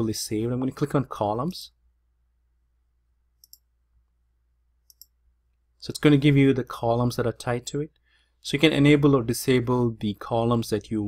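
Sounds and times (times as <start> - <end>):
computer mouse clicks: 3.4 - 3.7, 4.8 - 5.2.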